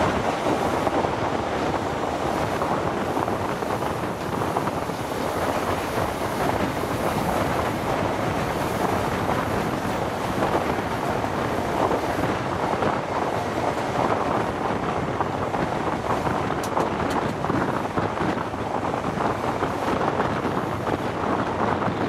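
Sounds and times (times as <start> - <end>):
train wheels on rails: 0.0 - 22.0
wind rushing over microphone: 0.0 - 22.0.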